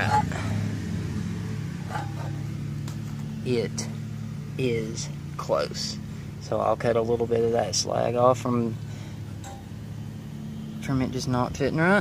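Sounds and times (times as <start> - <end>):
low mechanical hum: 0.0 - 12.0.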